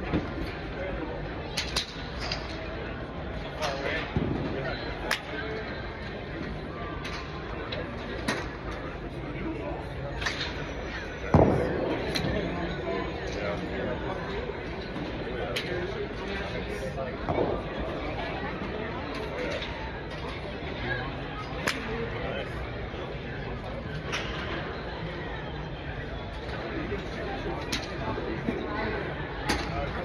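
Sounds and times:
steady background noise: 0.0s - 30.0s.

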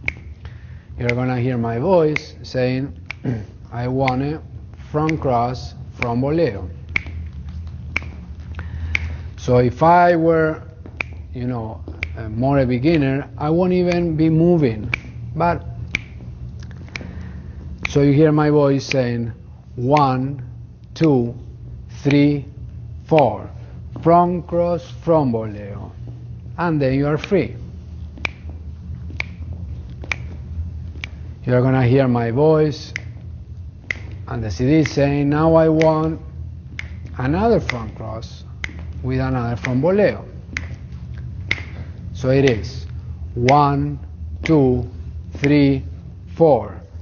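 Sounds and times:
low steady hum: 0.0s - 47.0s
sharp rhythmic clicks: 0.0s - 47.0s.

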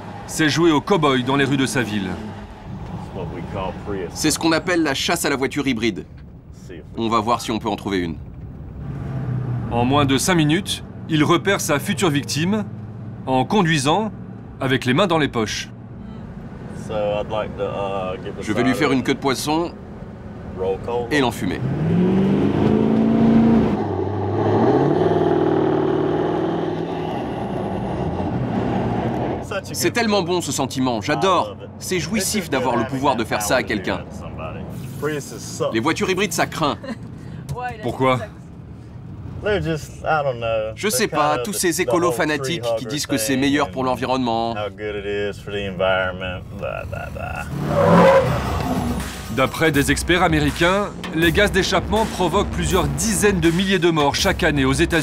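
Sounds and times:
diesel engine revving hard: 8.8s - 13.2s, 21.3s - 29.5s, 47.4s - 55.0s.

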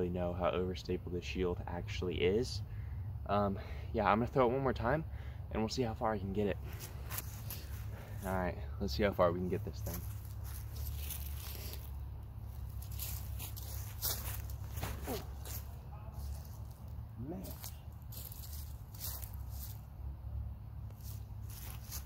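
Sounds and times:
steady low rumble: 0.0s - 22.0s.

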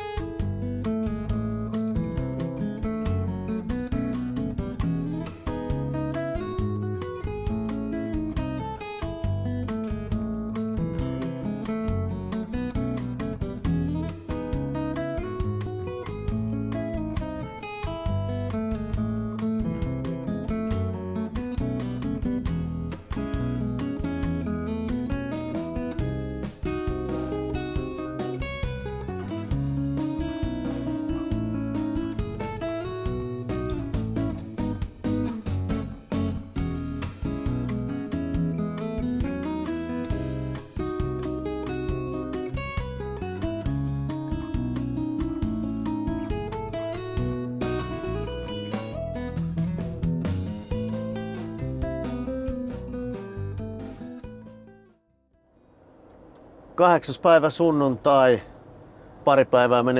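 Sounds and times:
strummed acoustic guitar music: 0.0s - 55.1s.

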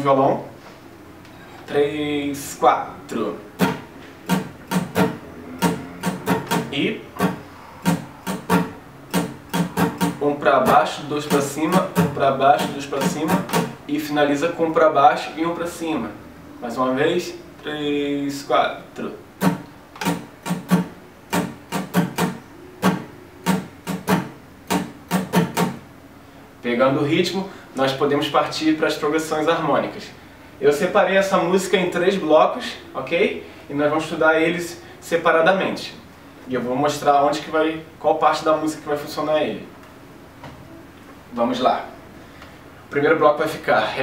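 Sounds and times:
acoustic guitar strumming: 3.4s - 13.8s, 19.2s - 25.9s.

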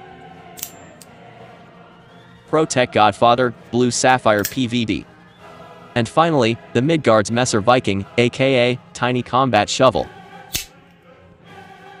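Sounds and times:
faint choral background music: 0.0s - 12.0s
folding knife blade snapping open: 0.6s - 0.8s, 10.5s - 10.7s.

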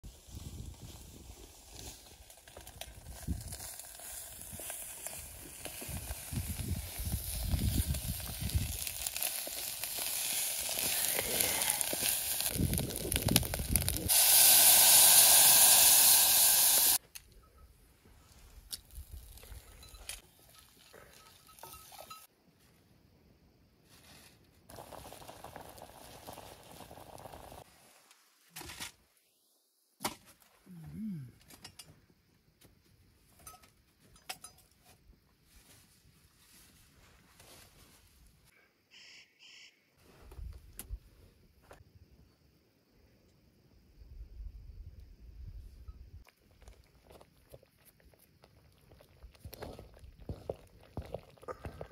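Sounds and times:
greens sizzling in a pot: 0.2s - 17.0s, 24.7s - 28.0s.

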